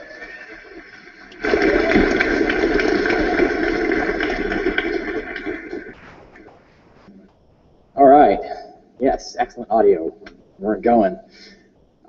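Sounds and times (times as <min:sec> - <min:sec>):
audience cheering: 0:00.0 - 0:06.1
audience applauding: 0:00.0 - 0:06.8.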